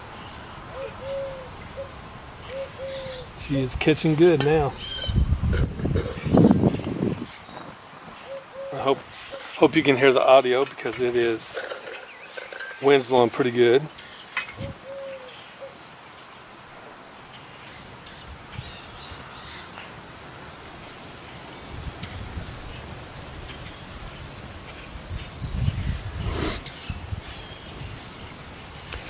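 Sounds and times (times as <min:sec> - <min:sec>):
wind buffeting microphone: 0:03.2 - 0:08.2, 0:14.4 - 0:14.9, 0:21.6 - 0:29.0.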